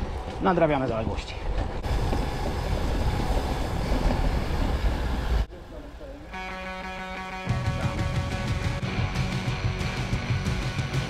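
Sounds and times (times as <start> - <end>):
bike rolling over cobblestones: 0.0 - 5.5
wind buffeting microphone: 0.0 - 5.5
guitar background music: 7.3 - 11.0.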